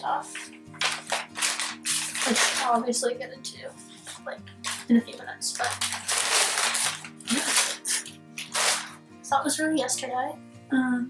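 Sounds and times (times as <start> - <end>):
soft background music: 0.0 - 11.0
plastic bag rustling: 0.3 - 3.1, 4.0 - 9.0.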